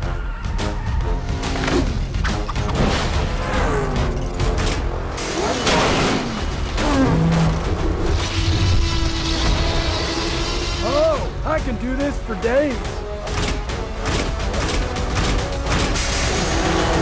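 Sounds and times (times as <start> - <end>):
dramatic cartoon action music: 0.0 - 17.0.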